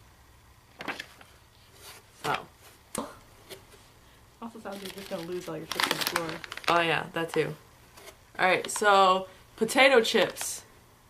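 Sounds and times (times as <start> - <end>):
items rustling: 0.8 - 2.8, 4.6 - 9.0.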